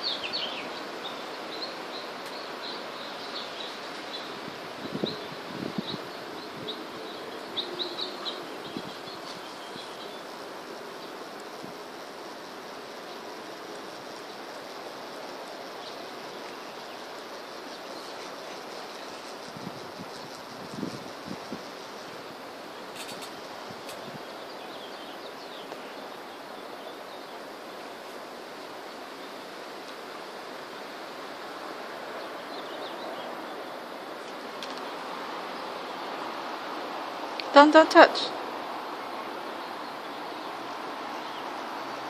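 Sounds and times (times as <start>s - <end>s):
outdoor background hiss: 0.0s - 42.0s.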